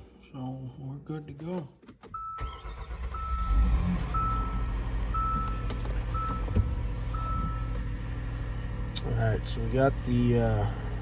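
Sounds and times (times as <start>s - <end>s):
car engine starting and running: 1.3s - 11.0s
dashboard warning chime: 2.1s - 7.8s.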